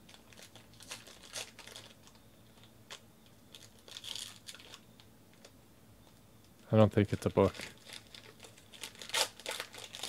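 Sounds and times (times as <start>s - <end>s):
foil pack crinkling and tearing: 0.1s - 5.5s, 7.1s - 10.0s.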